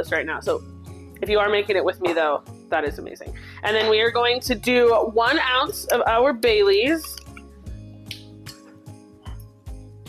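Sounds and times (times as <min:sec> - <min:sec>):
soft background music: 0:00.0 - 0:10.0
bottle screw cap clicking: 0:07.0 - 0:07.5.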